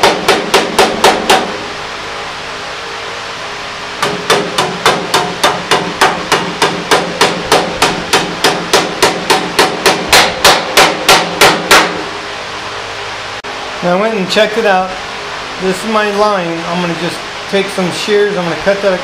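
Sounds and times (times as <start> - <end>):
hammer tapping sheet metal: 0.0 - 1.6, 4.0 - 12.1.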